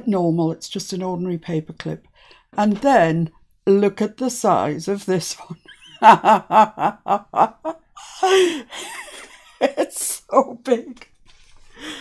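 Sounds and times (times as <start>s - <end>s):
woman chuckling: 5.6s - 10.0s.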